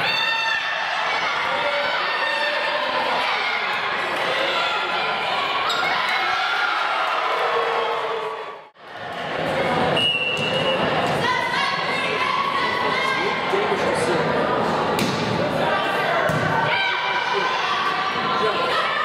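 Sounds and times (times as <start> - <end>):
players and spectators shouting: 0.0 - 8.7, 15.6 - 19.0.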